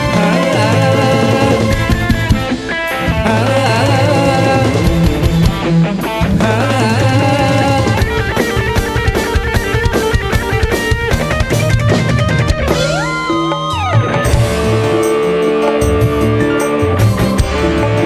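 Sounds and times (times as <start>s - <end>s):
live band playing: 0.0s - 18.0s
rapid drum hits: 0.0s - 18.0s.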